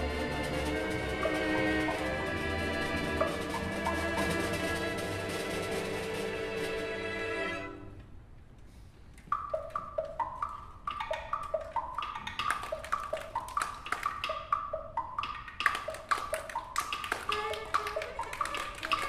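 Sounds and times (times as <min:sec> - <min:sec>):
orchestral percussion rhythm: 0:00.0 - 0:07.8, 0:09.4 - 0:19.0.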